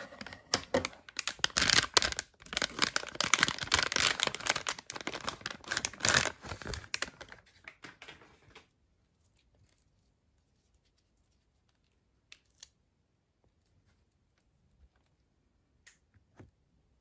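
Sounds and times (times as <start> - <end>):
plastic pouch crinkling: 0.3 - 8.6.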